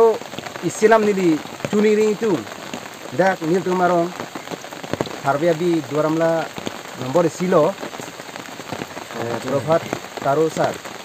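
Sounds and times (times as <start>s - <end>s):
man talking: 0.0s - 2.5s, 3.1s - 4.2s, 5.2s - 7.8s, 9.1s - 10.8s
steady rain falling: 0.0s - 11.0s.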